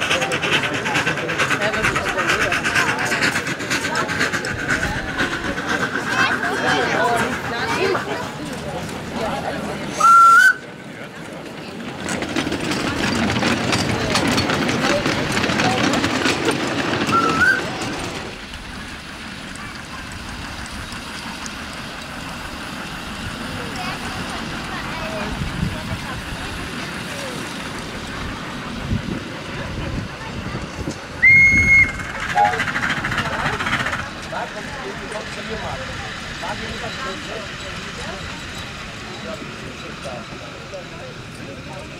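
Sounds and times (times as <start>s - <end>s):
miniature train passing: 0.0s - 41.9s
wheels clicking over track: 0.0s - 41.9s
steam locomotive whistle: 9.9s - 10.6s, 17.1s - 17.7s, 31.2s - 32.6s.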